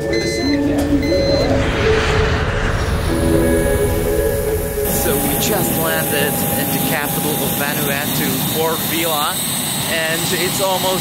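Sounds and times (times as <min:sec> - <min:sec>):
short electronic beeps: 0:00.0 - 0:01.5
low rumble: 0:00.0 - 0:07.6
background music: 0:03.0 - 0:06.9.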